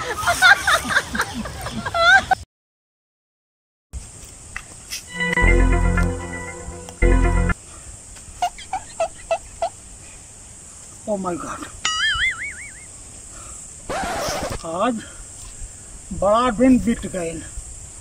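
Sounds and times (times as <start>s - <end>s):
organ-like keyboard chord stabs: 5.1s - 7.6s.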